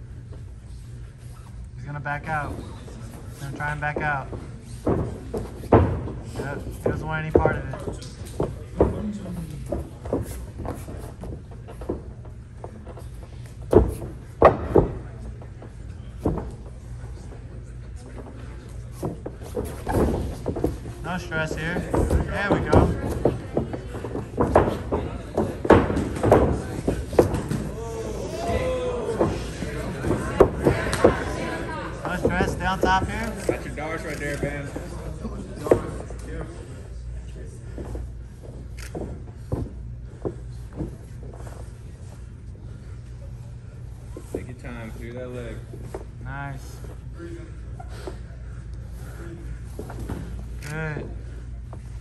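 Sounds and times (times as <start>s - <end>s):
low hum of hall: 0.0s - 52.0s.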